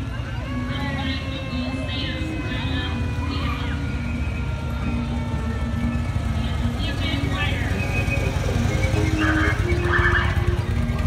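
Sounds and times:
motorcycle engines passing: 0.0s - 11.0s
music: 0.0s - 11.0s
voices: 0.0s - 11.0s.

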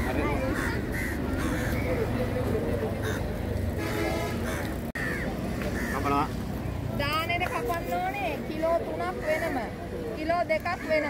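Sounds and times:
crows cawing: 0.0s - 2.2s, 3.0s - 3.4s, 4.4s - 6.3s, 9.0s - 9.8s, 10.6s - 11.0s.

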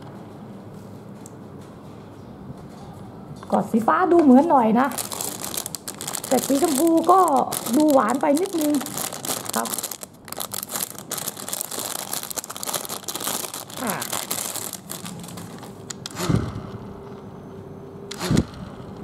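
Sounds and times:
plastic packaging crinkling: 4.8s - 16.1s.

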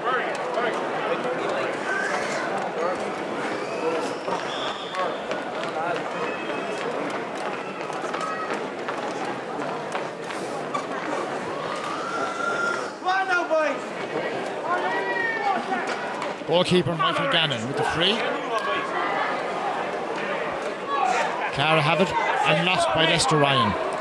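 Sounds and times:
people talking and calling out: 0.0s - 24.0s.

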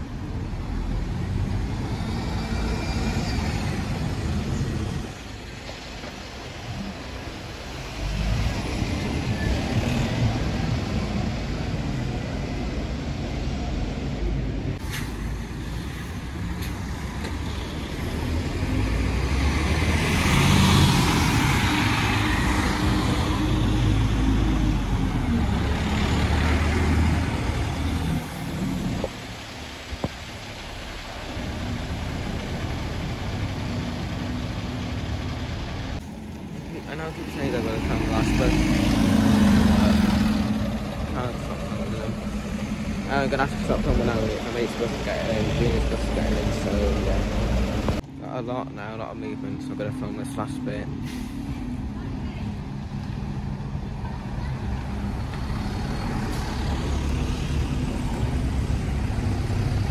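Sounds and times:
diesel buses pulling away: 0.0s - 59.9s.

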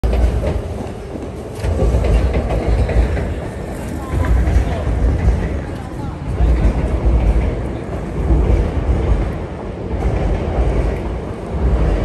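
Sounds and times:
low city rumble: 0.0s - 12.0s.

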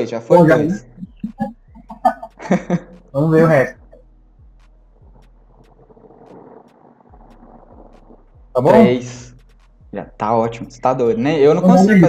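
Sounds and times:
steady hum: 0.3s - 9.2s.

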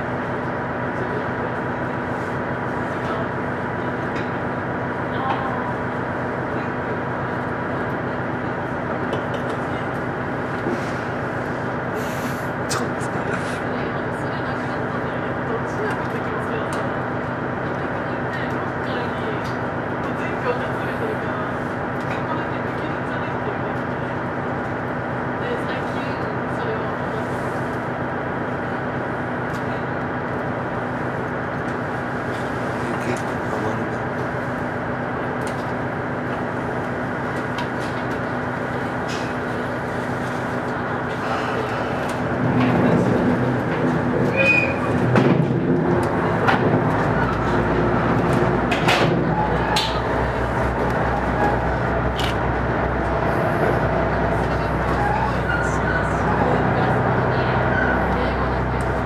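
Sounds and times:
diesel engines idling: 0.0s - 59.0s
rail running noise: 0.0s - 59.0s.

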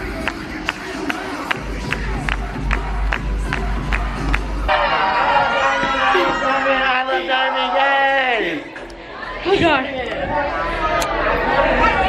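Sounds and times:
people chattering and exclaiming: 0.0s - 12.0s.

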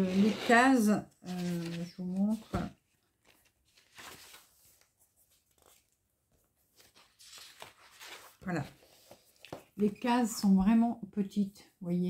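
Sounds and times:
paper pages rustling: 1.2s - 10.0s.

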